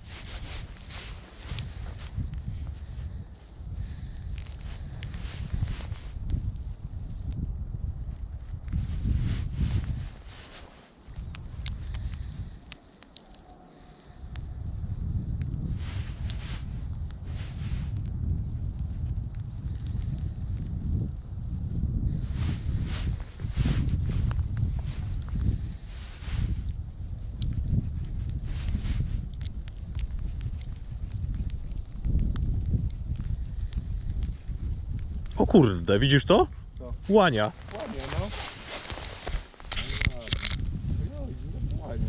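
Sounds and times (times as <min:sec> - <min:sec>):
hissy rustles: 0:00.0 - 0:07.4, 0:08.2 - 0:14.4, 0:15.7 - 0:18.1, 0:22.1 - 0:32.0, 0:33.3 - 0:42.0
wind buffeting microphone: 0:00.0 - 0:42.0.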